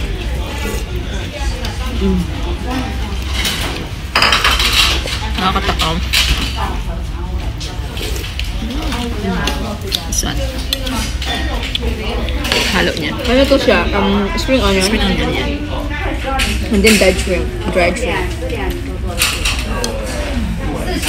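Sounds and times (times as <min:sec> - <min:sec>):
background chatter: 0:00.0 - 0:21.0
dishes and cutlery clatter: 0:02.7 - 0:06.9, 0:07.5 - 0:15.5, 0:16.1 - 0:21.0.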